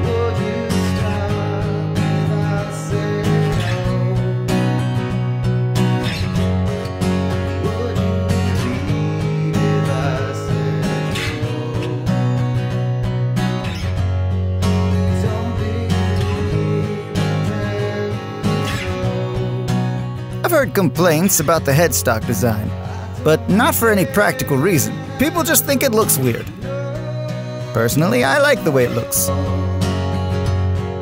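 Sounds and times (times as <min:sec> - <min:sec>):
acoustic guitar chords and melody: 0:00.0 - 0:31.0.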